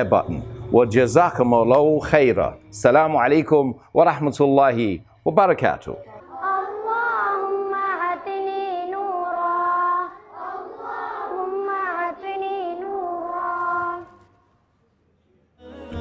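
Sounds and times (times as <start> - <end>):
children chanting a prayer: 6.0 - 14.2.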